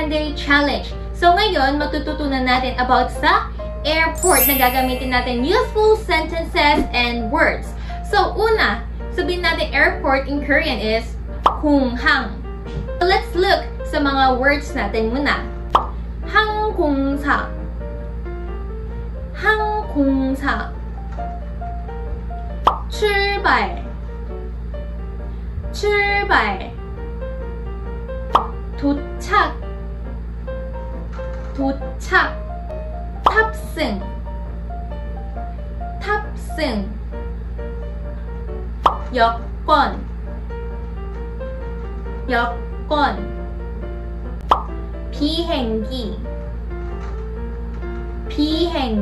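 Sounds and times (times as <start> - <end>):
light background music: 0.0 - 49.0.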